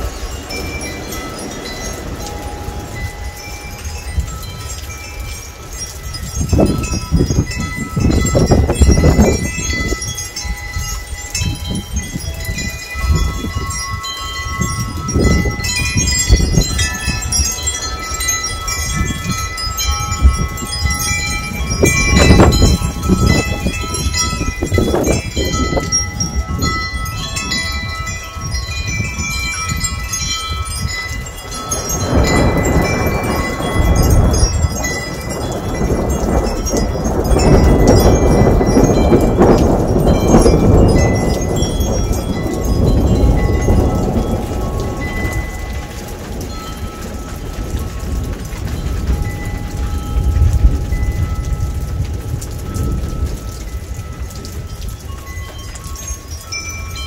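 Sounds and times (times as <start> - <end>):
gusty storm wind: 0.0 - 57.0
wind chimes ringing: 0.0 - 57.0.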